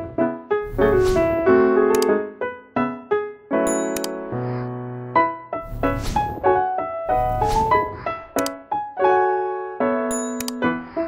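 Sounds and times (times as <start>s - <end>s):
piano-like keyboard music: 0.0s - 11.0s.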